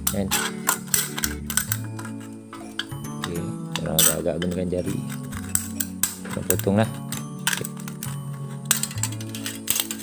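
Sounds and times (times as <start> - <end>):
background music: 0.0 - 10.0
scissors cutting aluminium can: 3.2 - 10.0.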